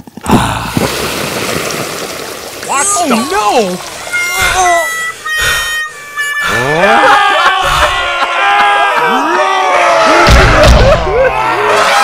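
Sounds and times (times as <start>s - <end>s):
cartoon music with harmonica-like notes: 3.9s - 8.8s
character crying out: 4.2s - 5.0s, 6.4s - 10.2s.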